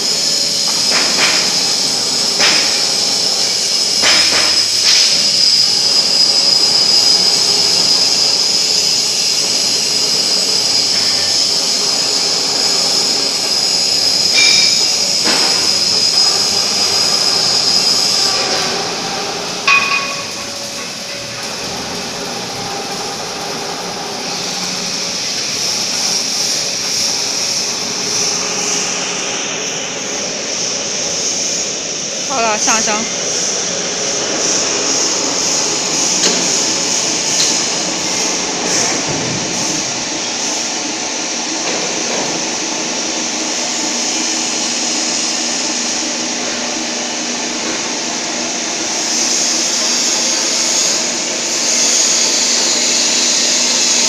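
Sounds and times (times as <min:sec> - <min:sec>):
welding manipulator drive whining: 0:00.0 - 0:30.3.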